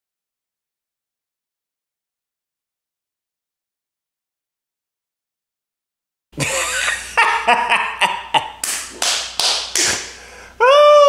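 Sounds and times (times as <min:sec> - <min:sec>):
man laughing hard: 0:06.4 - 0:08.6
hands clapping: 0:08.5 - 0:10.2.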